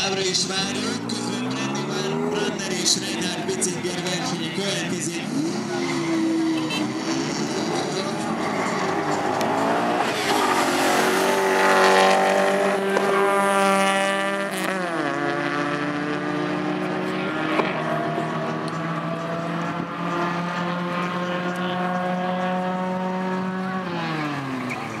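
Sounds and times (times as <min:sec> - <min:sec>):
cars accelerating hard: 0:00.0 - 0:25.0.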